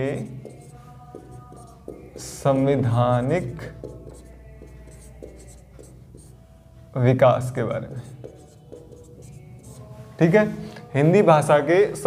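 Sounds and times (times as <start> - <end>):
marker pen scratching on whiteboard: 0.0 - 6.4, 7.8 - 9.9.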